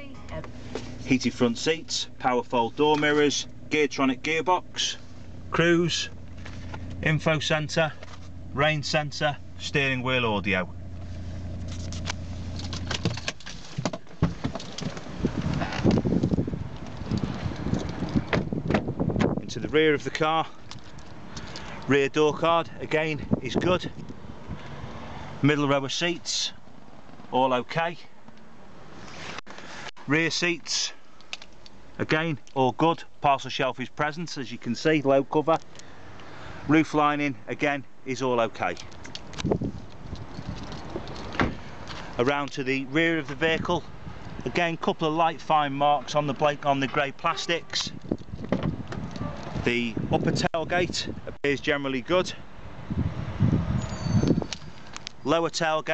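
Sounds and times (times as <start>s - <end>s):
diesel engine idling: 0.0s - 13.7s
clicks and rustles handling car interior: 0.2s - 3.6s, 5.0s - 9.0s, 10.8s - 19.5s, 20.1s - 21.9s, 38.6s - 42.6s, 46.3s - 49.6s
car door shutting: 11.0s - 16.4s, 17.1s - 19.4s, 40.8s - 42.0s, 48.3s - 49.5s.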